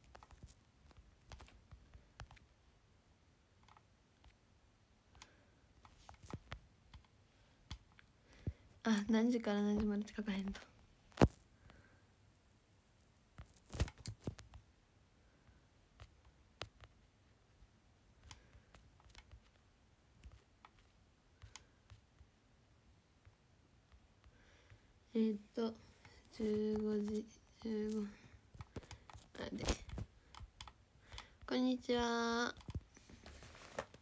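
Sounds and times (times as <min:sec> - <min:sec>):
young woman speaking: 0:08.9 - 0:10.7, 0:25.1 - 0:28.2, 0:29.3 - 0:29.9, 0:31.5 - 0:32.6.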